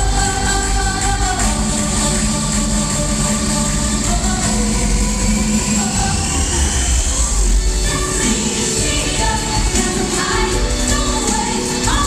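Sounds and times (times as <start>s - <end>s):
live pop band music: 0.0s - 12.0s.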